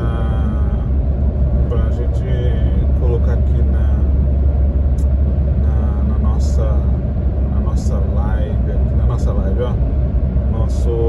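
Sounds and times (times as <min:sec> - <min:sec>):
car driving on highway: 0:00.0 - 0:11.0.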